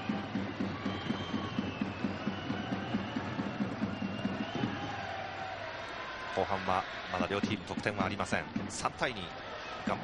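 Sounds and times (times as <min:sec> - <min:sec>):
drums beating in steady rhythm: 0:00.0 - 0:05.5, 0:07.3 - 0:10.0
stadium crowd noise: 0:00.0 - 0:10.0.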